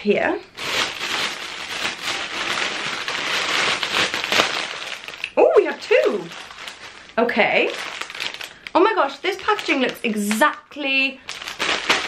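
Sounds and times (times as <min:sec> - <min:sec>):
plastic bag crinkling: 0:00.4 - 0:12.0.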